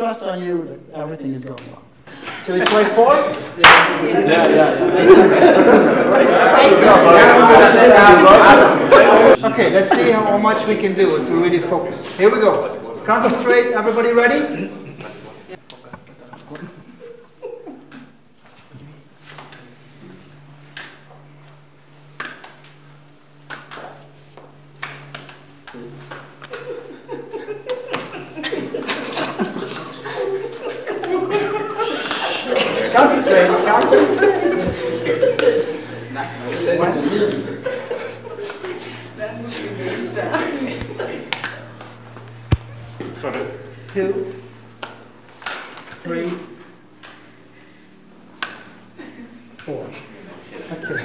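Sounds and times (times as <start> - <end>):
steady low hum: 0.0 - 51.0
voices and laughter: 2.1 - 10.8, 16.5 - 18.2, 26.3 - 42.9, 48.8 - 51.0
apples slapping into hands: 2.6 - 4.0, 22.2 - 22.8, 23.4 - 24.0, 42.5 - 43.2
apple slapping into hand: 22.2 - 22.8, 42.5 - 42.8.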